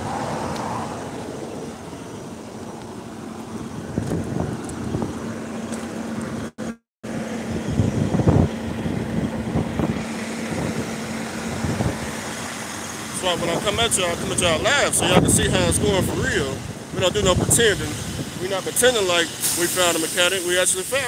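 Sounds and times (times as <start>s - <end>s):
engine idling hum: 0.9s - 21.0s.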